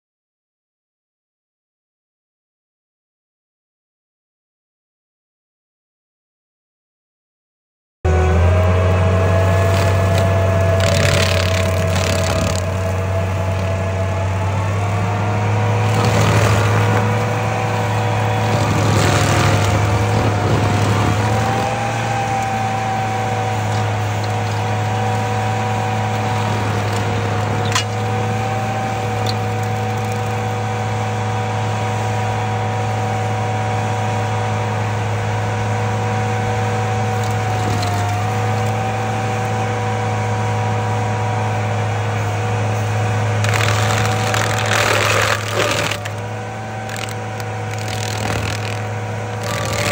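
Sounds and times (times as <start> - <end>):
cutter wheel grinding stump: 8.1 - 49.9
stump grinder engine running: 8.1 - 49.9.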